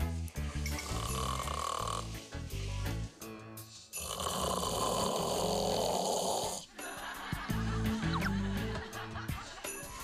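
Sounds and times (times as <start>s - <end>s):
background music: 0.0s - 10.0s
person snoring: 0.8s - 2.5s, 4.0s - 6.7s.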